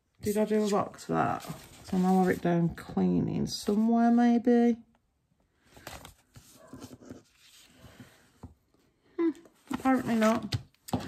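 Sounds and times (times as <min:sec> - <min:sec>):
paper sticker sheet rustling: 0:09.7 - 0:11.0.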